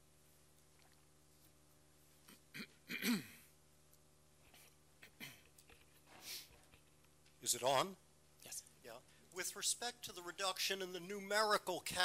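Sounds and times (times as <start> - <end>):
person clearing throat: 2.2 - 3.5, 5.0 - 5.6.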